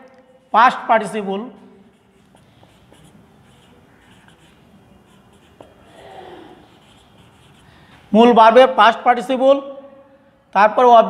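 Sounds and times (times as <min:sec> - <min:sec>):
marker pen writing on whiteboard: 0:01.8 - 0:08.1.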